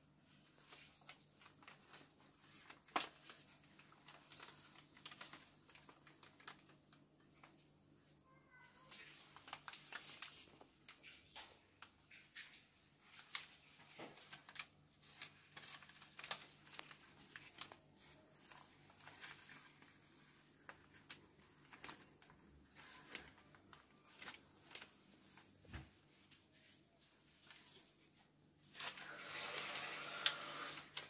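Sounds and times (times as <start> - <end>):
kittens rustling and scratching: 8.6 - 31.0.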